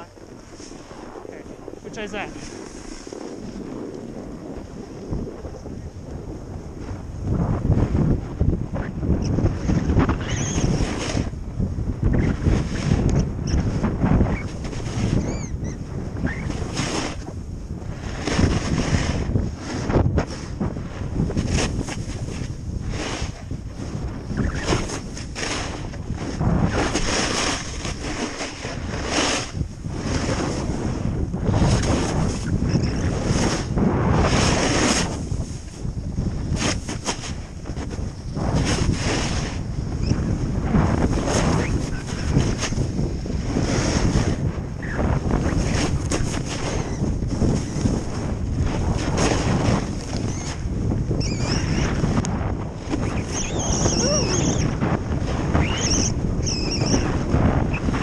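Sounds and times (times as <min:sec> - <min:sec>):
wind buffeting microphone: 0:00.0 - 0:58.0
ski edges scraping snow: 0:00.2 - 0:05.7, 0:16.3 - 0:17.3, 0:17.9 - 0:20.6, 0:21.2 - 0:39.7, 0:40.7 - 0:50.6.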